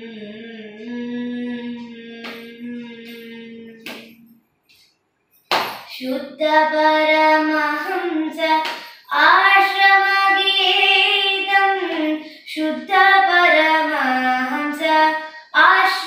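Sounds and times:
girl singing devotional song: 0.0s - 4.3s, 5.5s - 16.0s.

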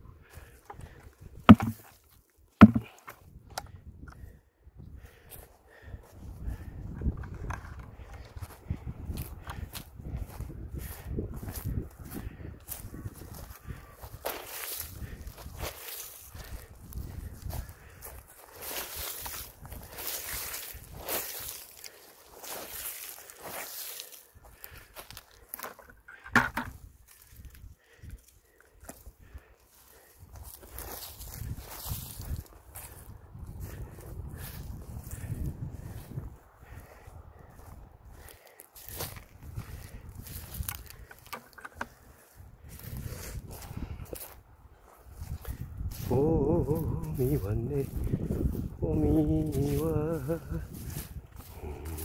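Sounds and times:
footsteps through dry grass: 0.1s - 3.3s, 5.0s - 26.0s, 26.6s - 52.0s.

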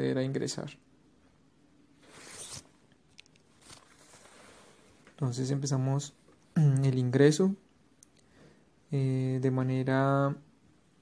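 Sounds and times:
soft hiss: 0.0s - 11.0s.

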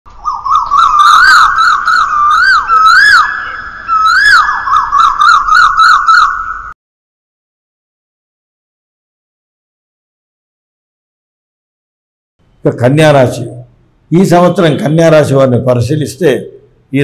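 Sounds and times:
siren-like warbling whistle: 0.3s - 6.8s
steady high tone: 0.9s - 6.7s.

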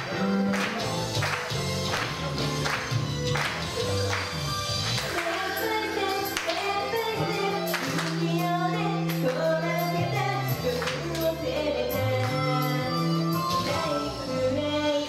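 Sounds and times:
upbeat pop track with drums: 0.0s - 15.0s
girls singing: 5.1s - 12.8s.

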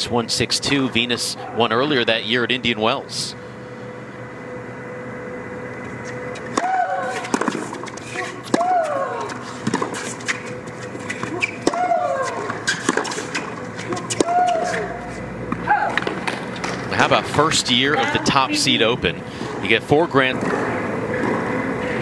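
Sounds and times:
racket hitting tennis ball: 6.4s - 16.8s
tennis ball bouncing: 6.4s - 16.8s
player shrieking: 14.2s - 15.0s.

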